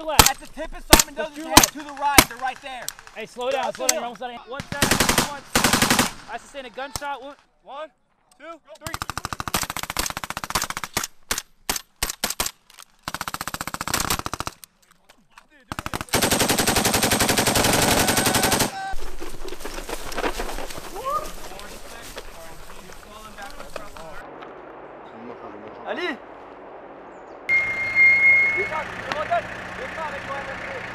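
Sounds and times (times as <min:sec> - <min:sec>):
automatic gunfire: 0:04.6 - 0:06.4, 0:08.9 - 0:14.6, 0:15.7 - 0:19.0
machine gun bursts: 0:04.8 - 0:06.3, 0:13.1 - 0:14.6, 0:15.7 - 0:19.0
low lingering rumble: 0:19.0 - 0:30.9.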